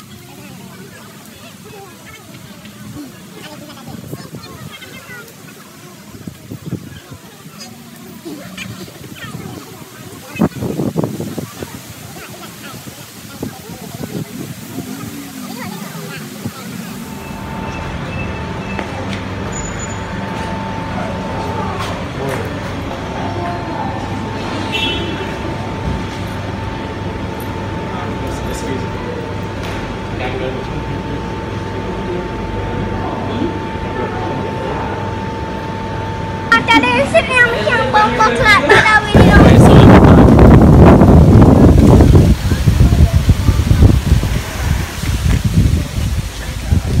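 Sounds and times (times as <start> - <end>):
distant talking voices: 0.0 - 47.0
street traffic rumble: 0.0 - 47.0
thin high tone: 16.2 - 22.2
loud voice: 36.5 - 40.2.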